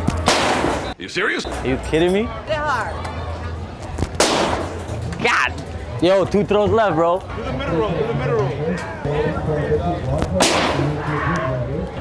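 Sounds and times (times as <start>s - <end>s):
fairground voices: 0.0s - 12.0s.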